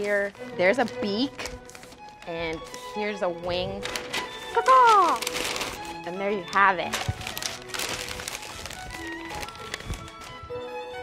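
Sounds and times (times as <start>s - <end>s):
paper rustling and crinkling: 0.0s - 10.6s
background music: 0.0s - 11.0s.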